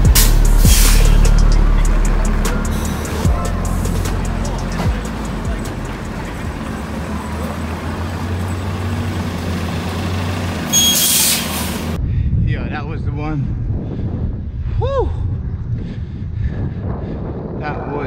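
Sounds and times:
city traffic hum: 0.0s - 12.1s
rushing noise: 0.0s - 12.1s
loud hiss of air: 0.2s - 1.4s.

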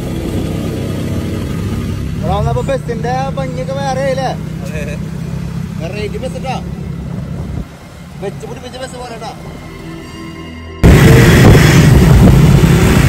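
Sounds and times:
motorcycle engine running: 0.0s - 8.4s, 10.8s - 13.0s
road traffic: 0.0s - 13.0s
voices talking: 2.2s - 9.9s.

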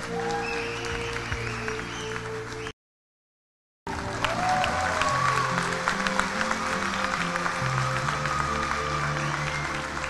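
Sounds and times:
audience clapping: 0.0s - 2.7s, 3.9s - 10.0s.

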